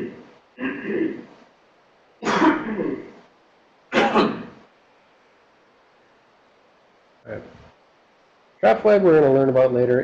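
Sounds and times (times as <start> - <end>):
man coughing: 0.0 - 1.3, 2.2 - 3.2, 3.9 - 4.6.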